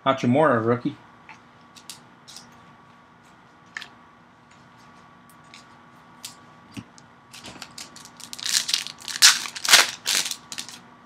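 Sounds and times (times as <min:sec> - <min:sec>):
foil wrapper crinkling and tearing: 0:07.4 - 0:10.8.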